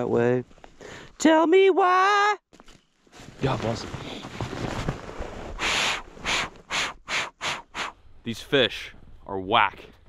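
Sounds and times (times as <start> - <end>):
faint rustling: 2.6 - 6.2.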